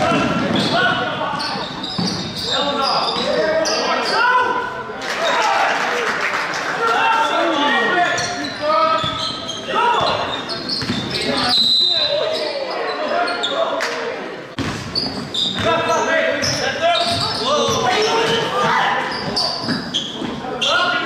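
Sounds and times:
sneakers squeaking on wooden floor: 0.0s - 4.3s, 7.9s - 13.7s, 14.6s - 21.0s
basketball bouncing: 10.8s - 11.1s, 14.6s - 15.7s
referee's whistle: 11.3s - 12.6s.

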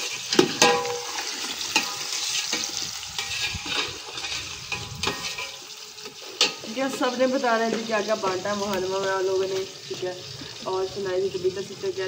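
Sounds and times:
metal ladle scraping pot: 0.0s - 10.6s
food sizzling in hot oil: 0.0s - 12.0s.

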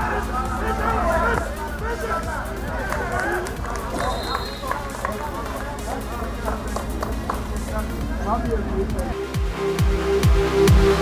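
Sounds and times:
people shouting: 0.0s - 6.5s
referee whistle blast: 3.9s - 4.9s.

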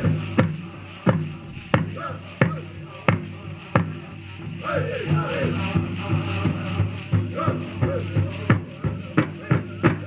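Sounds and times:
drum strikes in steady beat: 0.0s - 10.0s.

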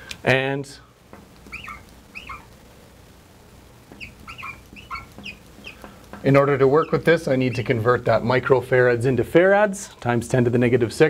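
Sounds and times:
marker squeaking on glass: 1.4s - 2.5s, 3.9s - 7.8s.

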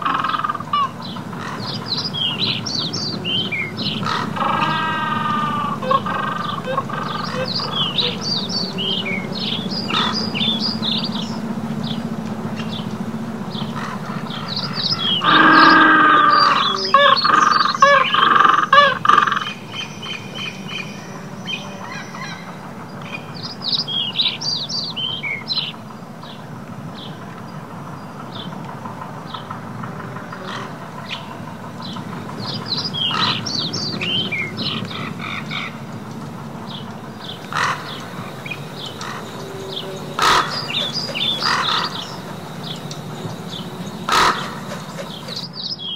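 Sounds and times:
harsh bird calls: 0.0s - 45.9s
small birds chirping: 0.0s - 45.9s
steady low hum: 0.0s - 45.9s.

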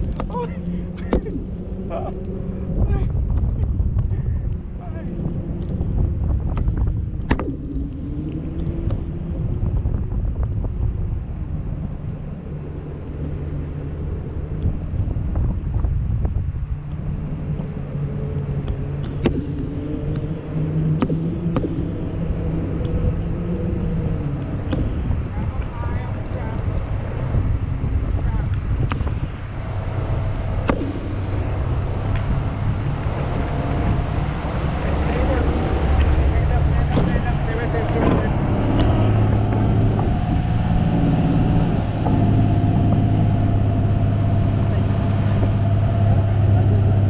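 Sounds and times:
boat engine drone: 0.0s - 47.0s
wind rushing over microphone: 0.0s - 47.0s.

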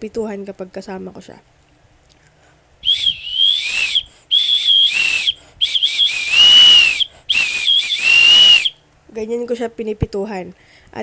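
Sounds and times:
pigeon whistle blasts: 2.8s - 8.8s.

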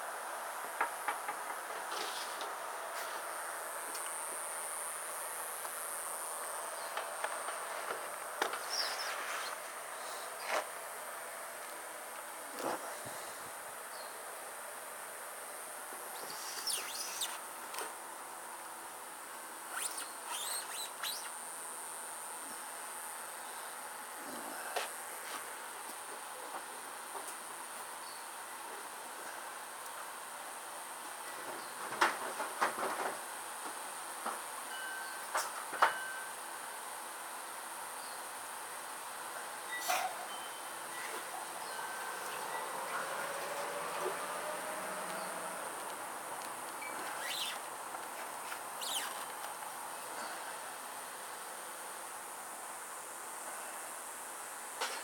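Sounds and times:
steady hiss: 0.0s - 55.0s
high-pitched insect drone: 1.9s - 11.0s, 16.0s - 17.6s, 19.7s - 25.1s, 39.6s - 47.8s, 48.7s - 49.4s
bird chirps: 16.3s - 17.4s.

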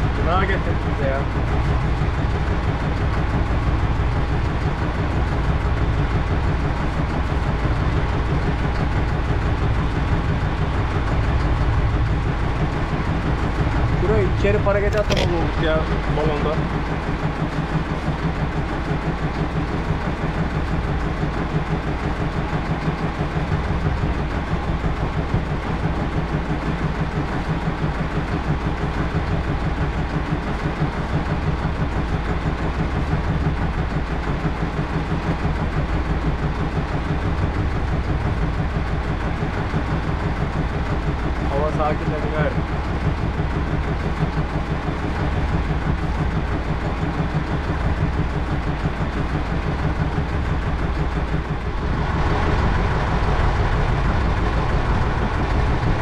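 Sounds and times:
boat engine idling: 0.0s - 56.0s.

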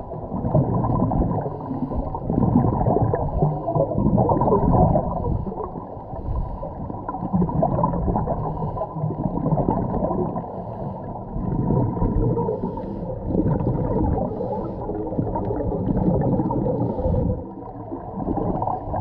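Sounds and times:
gurgle of exhaled bubbles: 0.0s - 19.0s
scuba regulator breathing underwater: 1.2s - 7.4s, 8.2s - 17.6s.

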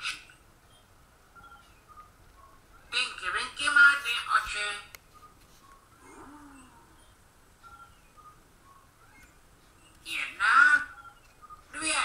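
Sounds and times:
baby cooing: 6.0s - 7.0s.

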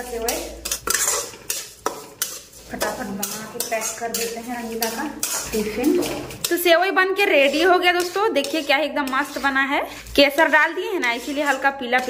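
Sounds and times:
spatula scraping metal pan: 0.0s - 12.0s.

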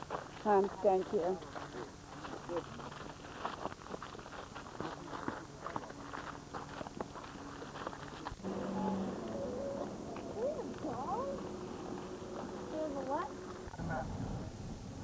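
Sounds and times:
footsteps on dirt path: 0.0s - 13.8s
steady low hum: 0.0s - 15.0s
faint voices: 4.1s - 14.2s.

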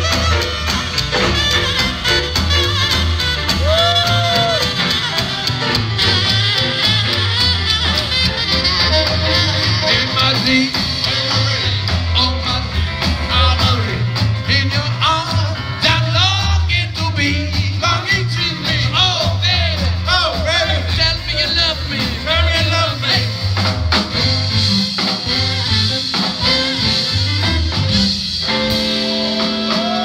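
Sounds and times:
saxophone: 0.0s - 12.9s, 23.9s - 30.0s
double bass: 0.0s - 30.0s
drums keeping the beat: 0.0s - 30.0s
electric guitar: 26.2s - 30.0s.

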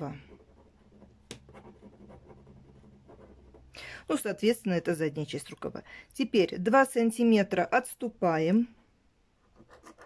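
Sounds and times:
pen scratching on paper: 0.0s - 3.7s, 9.4s - 10.0s.

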